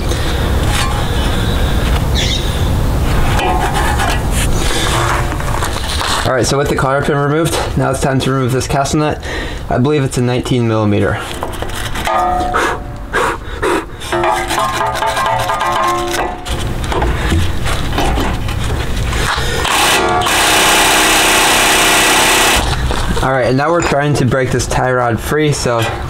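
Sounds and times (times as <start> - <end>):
loud steady noise: 0.0 - 6.8, 11.4 - 23.3
wire brush scrubbing metal: 3.2 - 5.9, 14.1 - 16.8.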